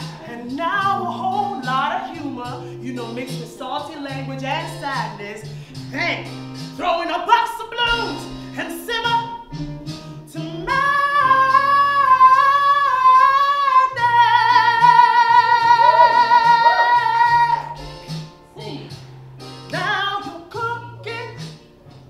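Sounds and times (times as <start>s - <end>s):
woman singing: 0.0s - 9.6s, 10.2s - 17.8s, 19.7s - 21.5s
backing beat: 0.0s - 22.0s.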